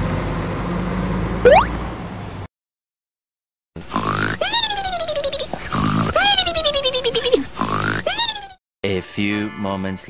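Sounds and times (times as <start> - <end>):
cartoon snoring: 3.8 - 4.5, 5.6 - 6.3, 7.6 - 8.2.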